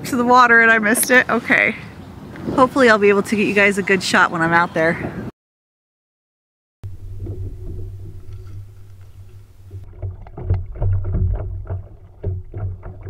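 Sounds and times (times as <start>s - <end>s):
steady low rumble: 6.8s - 13.0s
water splashing against hull: 6.8s - 13.0s.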